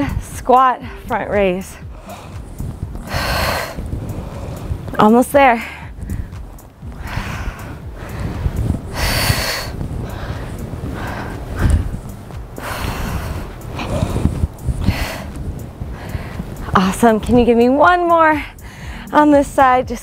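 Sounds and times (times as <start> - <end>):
woman breathing heavily: 0.0 - 1.1, 1.7 - 16.8, 18.4 - 19.2.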